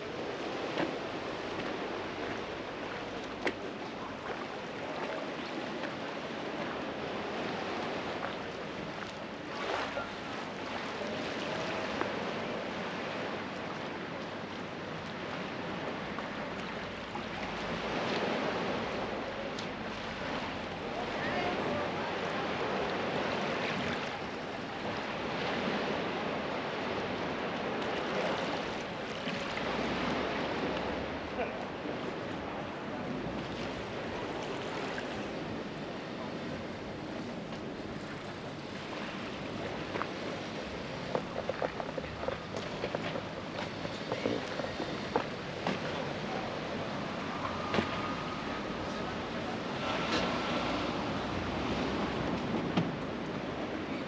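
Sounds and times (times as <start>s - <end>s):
gentle surf: 0.0s - 54.0s.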